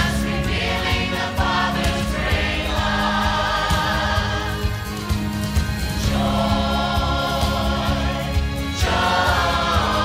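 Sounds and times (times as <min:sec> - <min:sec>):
choir singing: 0:00.0 - 0:10.0
instrumental accompaniment: 0:00.0 - 0:10.0.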